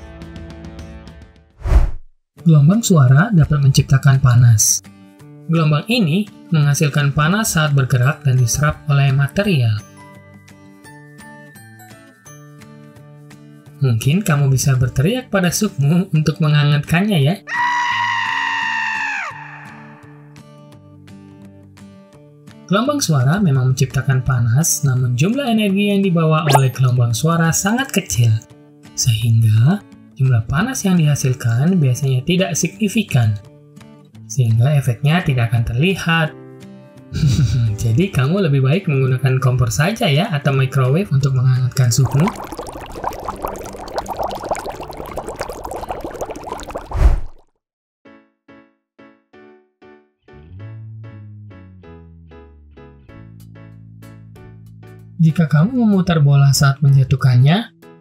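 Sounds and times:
light background music: 2.4 - 17.4, 20.6 - 41.4, 52.8 - 58.0
high-pitched yell: 17.5 - 20.2
soup bubbling at a rolling boil: 42.0 - 47.4.

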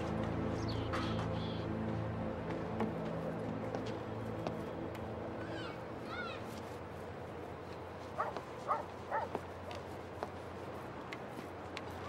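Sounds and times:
dog barking: 8.2 - 9.4.

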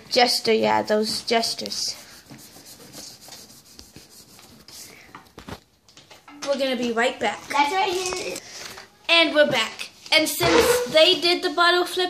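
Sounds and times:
pencil scratching on paper: 1.3 - 5.0.

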